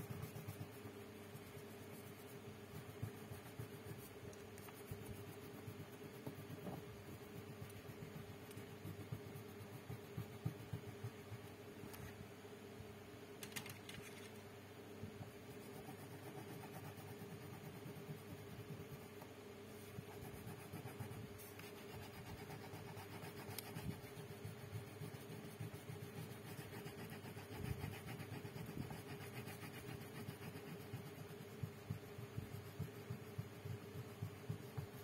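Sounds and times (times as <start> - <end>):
pencil scratching on paper: 0.0 - 11.6, 15.3 - 35.0
faint steady hum: 0.0 - 35.0.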